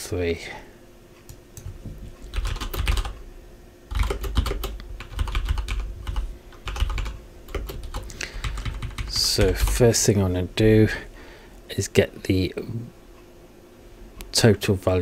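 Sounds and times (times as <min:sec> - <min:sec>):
computer keyboard typing: 0:01.6 - 0:03.2, 0:03.9 - 0:09.8.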